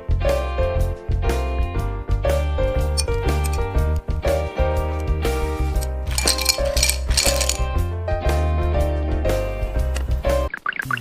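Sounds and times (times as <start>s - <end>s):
ice cubes clinking into glass: 3.0s - 3.6s, 5.6s - 7.7s.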